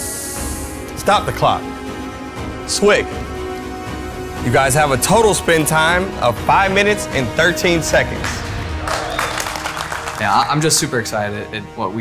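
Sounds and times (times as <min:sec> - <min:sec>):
background music: 0:00.0 - 0:12.0
small group applauding: 0:08.2 - 0:10.9.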